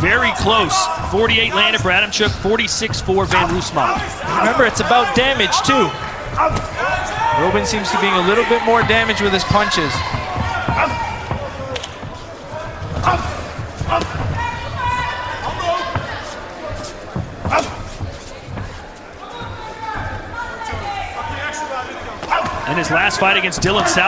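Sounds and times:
voices shouting: 0:00.0 - 0:16.6, 0:19.1 - 0:24.0
crowd noise: 0:00.0 - 0:24.0
feet on ring canvas: 0:00.1 - 0:07.6, 0:08.8 - 0:21.0.

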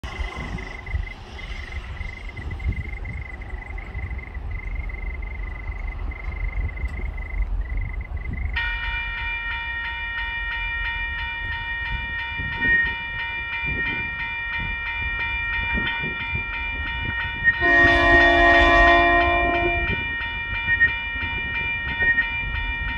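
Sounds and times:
train rumble: 0:00.0 - 0:22.9
locomotive horn blast: 0:17.6 - 0:20.1.

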